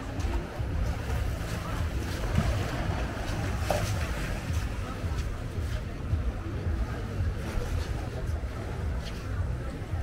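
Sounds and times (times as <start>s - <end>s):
waves splashing against stone wall: 0.0s - 10.0s
wind rumbling on microphone: 0.0s - 10.0s.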